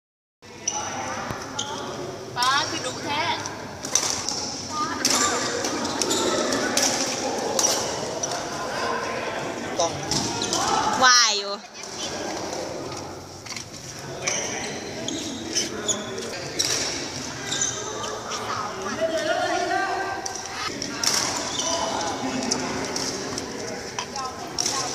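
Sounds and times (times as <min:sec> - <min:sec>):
faint voices: 0:00.5 - 0:24.9
shoe squeaks on court floor: 0:00.6 - 0:01.9, 0:05.7 - 0:06.7, 0:14.2 - 0:18.6, 0:21.2 - 0:22.0
shoes squeaking on court floor: 0:00.6 - 0:02.0, 0:03.8 - 0:08.6, 0:11.7 - 0:24.9
rackets hitting shuttlecock: 0:03.8 - 0:08.5.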